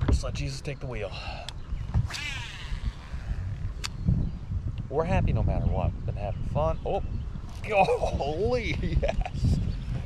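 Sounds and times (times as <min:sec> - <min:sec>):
wind rumble on microphone: 0:00.0 - 0:10.0
fishing line whirring off reel: 0:01.9 - 0:04.0.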